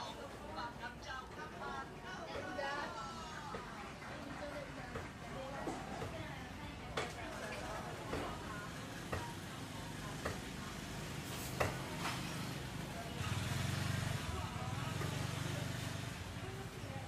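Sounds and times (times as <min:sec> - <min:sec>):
faint background voices: 0:00.0 - 0:17.0.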